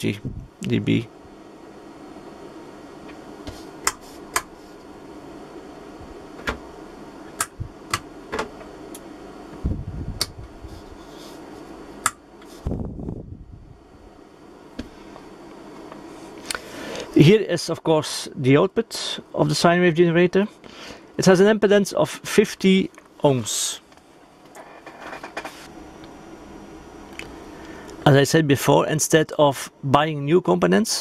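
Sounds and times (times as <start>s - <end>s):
fan hum: 0.0s - 31.0s.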